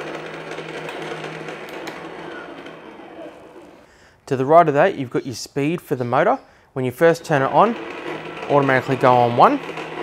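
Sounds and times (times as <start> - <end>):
shredder motor humming: 0.0 - 3.9, 7.4 - 10.0.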